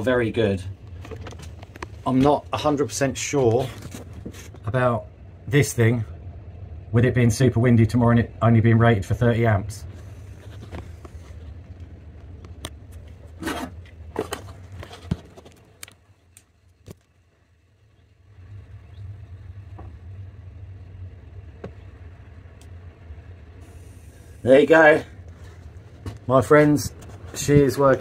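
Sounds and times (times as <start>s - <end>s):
low steady rumble: 0.0s - 28.0s.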